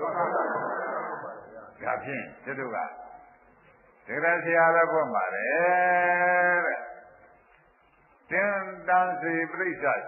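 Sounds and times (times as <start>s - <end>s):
man preaching: 1.7s - 3.2s, 4.1s - 7.2s, 8.3s - 10.0s.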